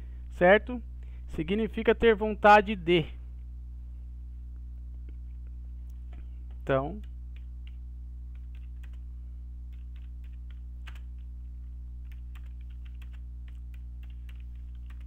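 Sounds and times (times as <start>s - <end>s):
low electrical hum: 0.0s - 15.0s
keyboard typing clicks: 6.0s - 9.0s, 9.7s - 11.3s, 12.0s - 15.0s.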